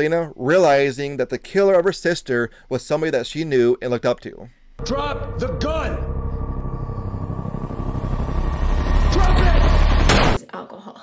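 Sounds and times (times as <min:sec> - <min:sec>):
faint held tone: 0:04.8 - 0:09.8
low rumbling drone: 0:04.8 - 0:10.4.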